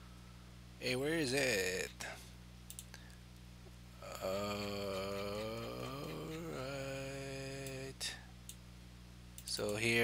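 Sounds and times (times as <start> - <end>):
low electrical hum: 0.0 - 10.0
computer mouse clicks: 2.7 - 3.0.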